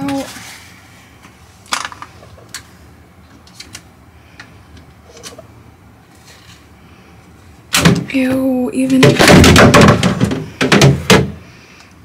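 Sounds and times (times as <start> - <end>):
loud knock: 9.0 - 11.4.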